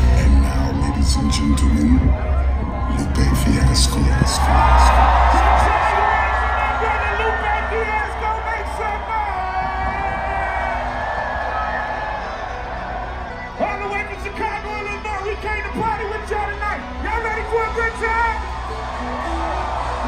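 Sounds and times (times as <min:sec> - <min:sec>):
crowd whooping and singing along: 0:00.0 - 0:20.0.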